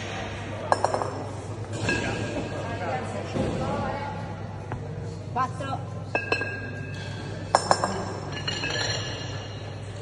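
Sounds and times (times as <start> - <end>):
kettlebells clinking together: 0.7 - 2.4, 6.1 - 9.9.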